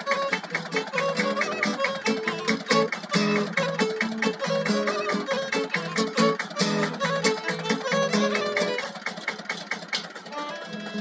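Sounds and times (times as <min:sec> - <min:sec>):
violin: 0:00.0 - 0:09.0, 0:10.2 - 0:11.0
acoustic guitar: 0:00.0 - 0:11.0.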